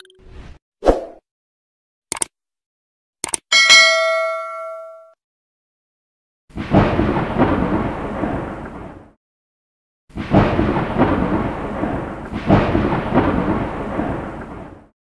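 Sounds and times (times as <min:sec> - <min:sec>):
rolls of thunder: 0:06.6 - 0:09.2, 0:10.1 - 0:14.9.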